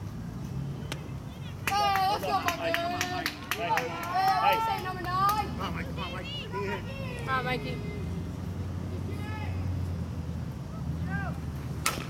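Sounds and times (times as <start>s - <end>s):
baseball bat hitting ball: 11.8s - 12.0s.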